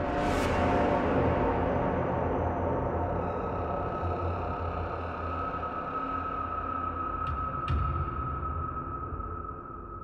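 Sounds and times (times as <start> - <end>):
eerie background music: 0.0 - 10.0.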